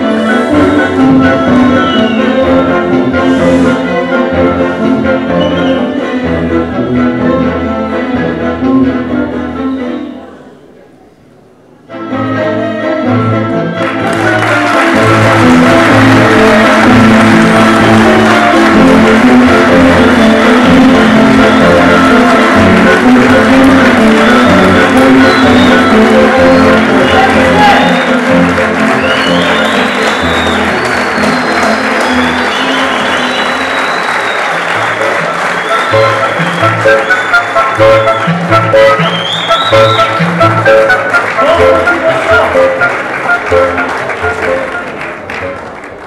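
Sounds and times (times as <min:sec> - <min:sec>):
audience applauding loudly: 0:13.8 - 0:46.0.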